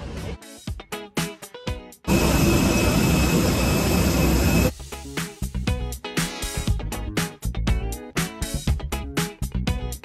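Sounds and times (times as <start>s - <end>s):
background music: 0.0s - 10.0s
jet aircraft whine: 2.1s - 4.7s.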